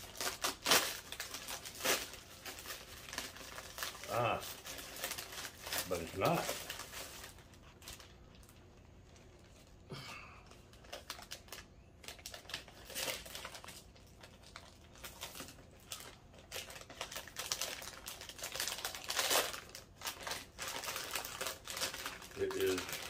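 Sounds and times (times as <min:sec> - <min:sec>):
plastic bag crinkling: 0:00.0 - 0:09.8, 0:10.4 - 0:23.0.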